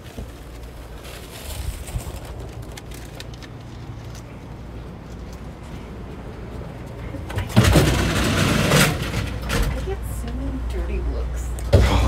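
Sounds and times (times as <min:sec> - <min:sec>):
train wheels rumbling on rails: 0:00.0 - 0:12.0.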